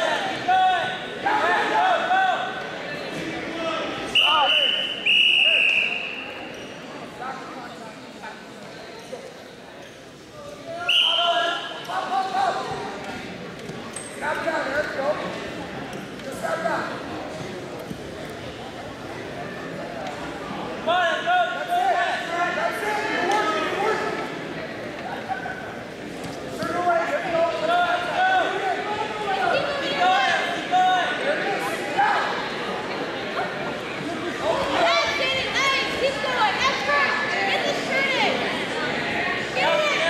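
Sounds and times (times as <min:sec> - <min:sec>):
chatter echoing in gymnasium: 0:00.0 - 0:40.0.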